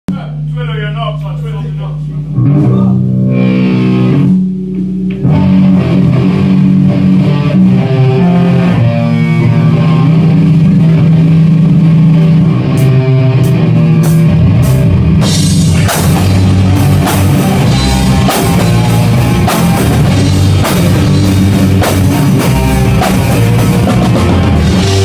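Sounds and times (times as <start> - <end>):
heavy metal guitar riff: 1.6 - 25.0.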